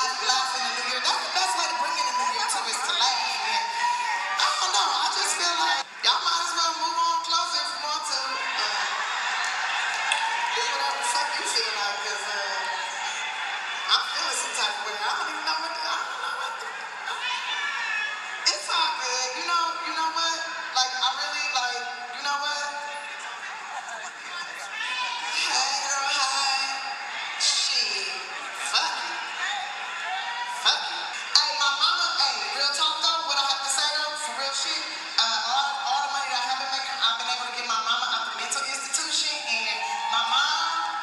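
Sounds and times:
performer talking: 0.0s - 9.2s, 10.4s - 13.2s, 13.8s - 41.0s
audience voices: 0.0s - 33.5s
indistinct speech through a microphone: 0.0s - 41.0s.

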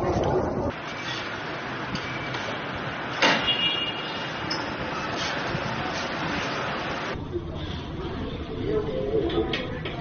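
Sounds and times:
street traffic: 0.0s - 10.0s.

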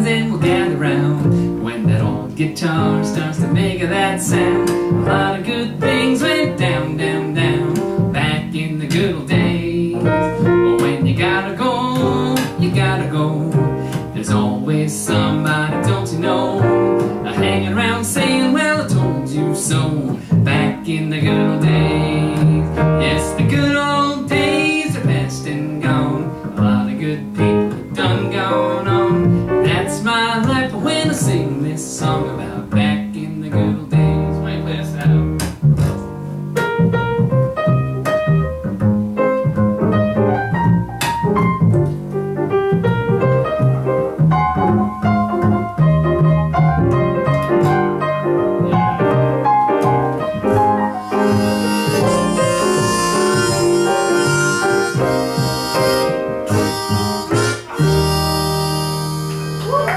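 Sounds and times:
double bass: 0.0s - 59.9s
grand piano: 0.0s - 59.9s.

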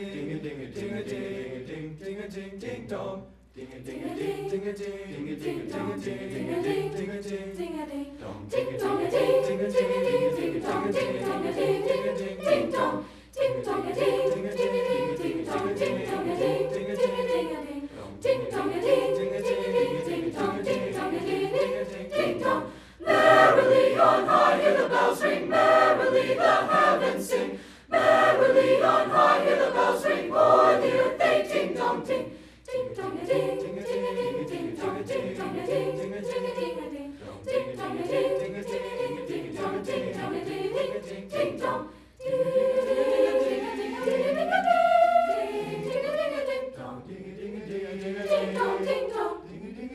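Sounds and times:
choir singing: 0.0s - 49.9s.

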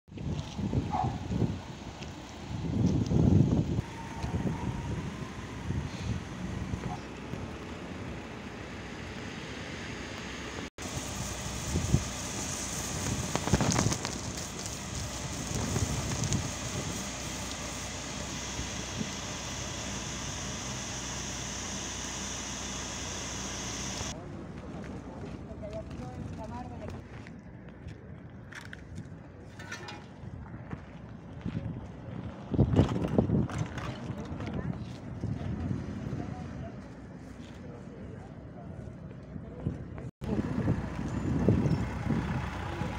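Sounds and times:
wind buffeting microphone: 0.1s - 1.8s, 2.4s - 7.0s, 12.8s - 17.2s, 30.2s - 36.7s, 39.6s - 42.9s
traffic noise: 0.1s - 42.9s.

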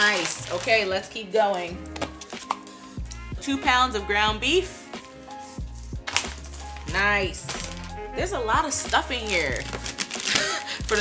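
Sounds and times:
plastic-wrapped packs clattering: 0.0s - 2.7s, 6.1s - 8.0s, 8.8s - 11.0s
soft background music: 0.0s - 11.0s.

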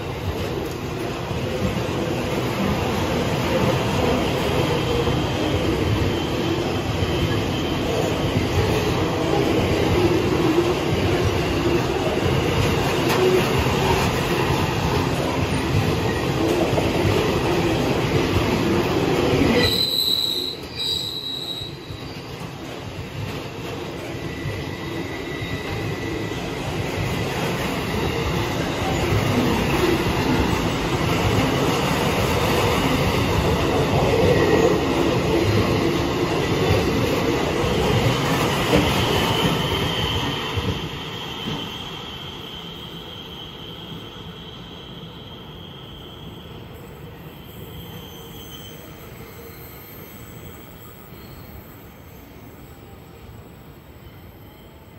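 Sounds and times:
train wheels rumbling on rail: 0.0s - 51.9s.

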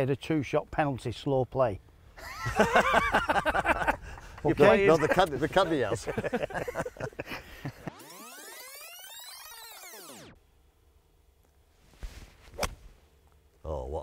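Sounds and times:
laughter: 2.2s - 8.0s
golf club striking ball: 12.5s - 12.9s.

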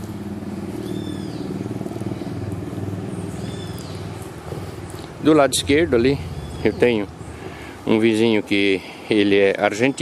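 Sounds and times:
engine running with rapid pulse: 0.0s - 7.9s.

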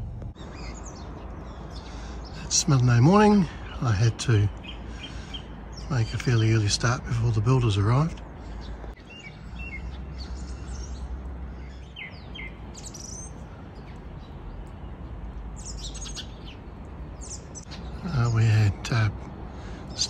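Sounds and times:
low background rumble: 0.0s - 20.0s
small birds chirping: 0.0s - 20.0s.

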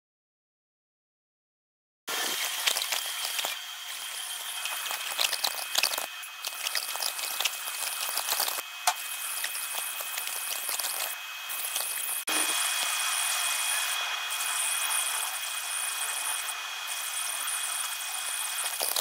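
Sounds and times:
machine whine: 2.1s - 19.0s
laser crackling hiss: 4.2s - 19.0s.

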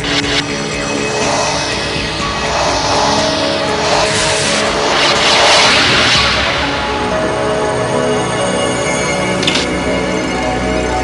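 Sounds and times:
whooshing sound effect: 0.0s - 8.1s
theme music: 0.0s - 11.0s.

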